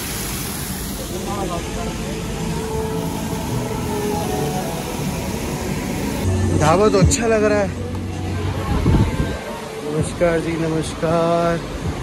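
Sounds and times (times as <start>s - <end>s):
outdoor background noise: 0.0s - 12.0s
faint music: 0.9s - 12.0s.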